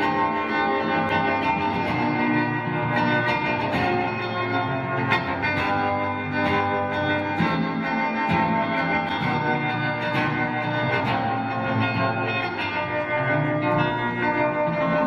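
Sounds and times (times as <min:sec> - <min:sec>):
acoustic guitar picking: 0:00.0 - 0:15.0.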